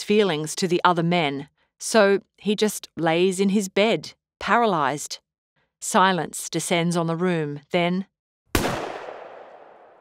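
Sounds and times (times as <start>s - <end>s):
pistol shot with echo: 8.6s - 10.0s.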